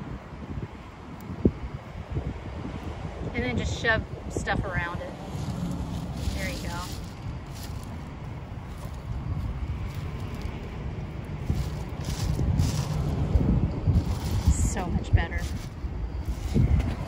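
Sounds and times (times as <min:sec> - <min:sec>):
wind rumbling on microphone: 0:00.0 - 0:17.0
hands scraping in gravel and soil: 0:05.4 - 0:08.0, 0:11.4 - 0:17.0.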